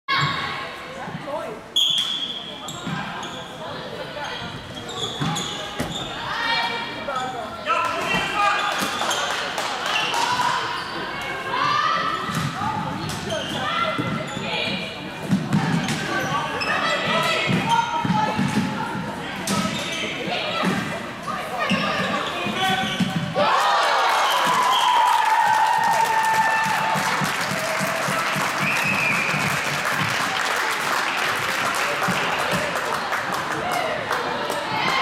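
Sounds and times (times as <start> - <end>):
shoes squeaking on floor: 1.7 - 7.5, 12.4 - 14.9, 15.5 - 18.9, 19.5 - 23.4.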